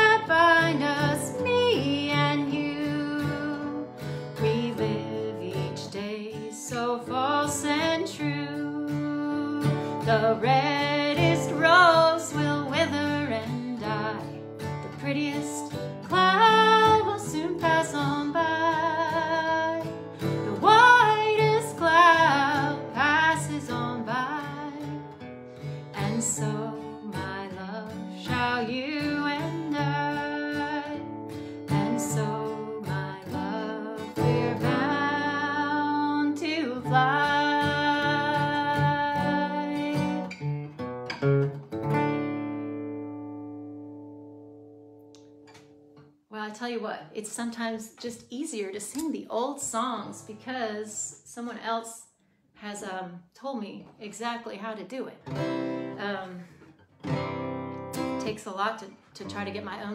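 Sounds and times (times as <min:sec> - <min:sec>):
woman singing folk song: 0:00.0 - 0:40.9, 0:46.3 - 0:59.9
strummed acoustic guitar: 0:00.0 - 0:46.1, 0:55.2 - 0:59.9.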